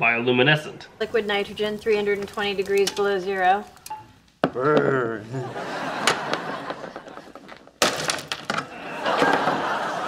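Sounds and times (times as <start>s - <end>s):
brittle pieces clattering: 7.5s - 8.7s.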